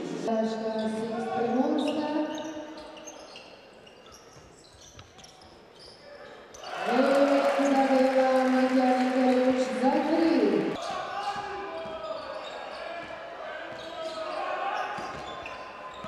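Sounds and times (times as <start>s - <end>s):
sneakers squeaking on court: 0.6s - 7.0s, 10.0s - 16.0s.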